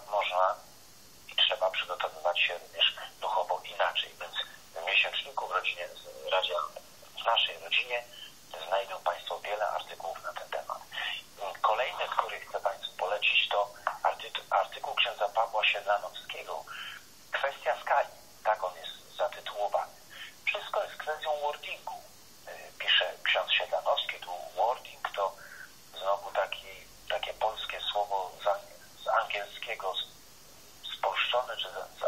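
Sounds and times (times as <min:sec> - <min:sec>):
person talking over telephone line: 0:00.0 - 0:00.7, 0:01.3 - 0:30.1, 0:30.8 - 0:32.0.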